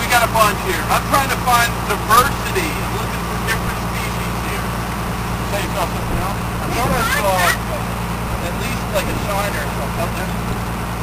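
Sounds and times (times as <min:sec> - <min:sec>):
boat engine droning: 0:00.0 - 0:11.0
children's voices: 0:06.7 - 0:07.8.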